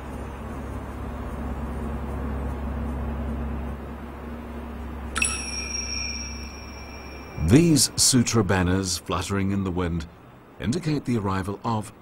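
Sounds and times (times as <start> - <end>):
low steady hum: 4.0 - 9.1
small bell ringing: 5.2 - 8.0.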